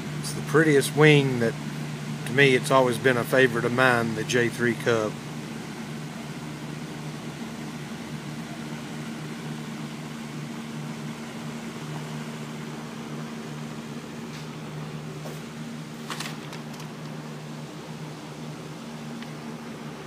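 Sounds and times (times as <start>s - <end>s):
ventilation fan humming: 0.0s - 20.0s.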